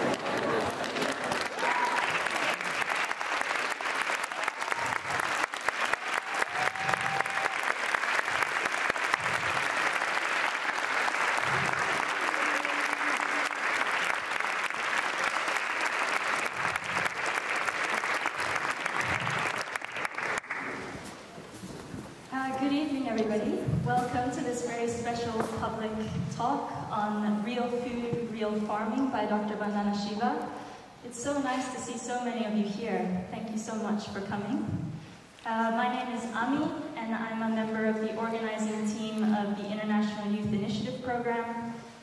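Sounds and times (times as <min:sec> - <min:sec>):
audience applauding: 0:00.0 - 0:21.2.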